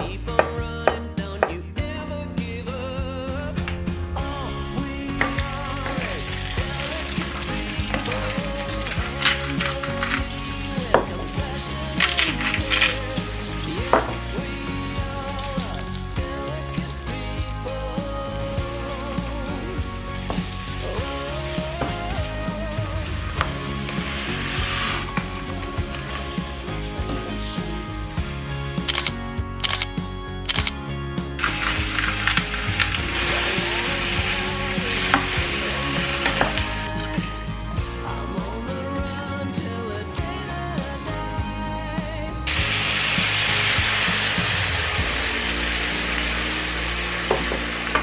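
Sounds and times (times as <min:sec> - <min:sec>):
background music: 0:00.0 - 0:48.0
rice poured into a pan: 0:05.0 - 0:28.6, 0:31.4 - 0:37.4, 0:42.5 - 0:48.0
onions sizzling in oil: 0:05.3 - 0:28.5, 0:31.4 - 0:37.4, 0:42.5 - 0:48.0.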